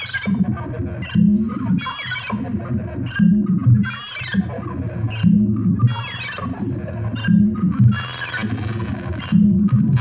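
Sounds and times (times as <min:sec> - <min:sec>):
techno synth bass line: 0:00.0 - 0:01.7, 0:07.0 - 0:10.0.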